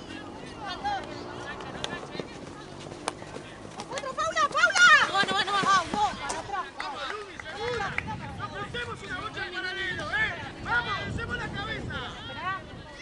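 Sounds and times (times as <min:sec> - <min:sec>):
women shouting calls: 0:04.0 - 0:06.1.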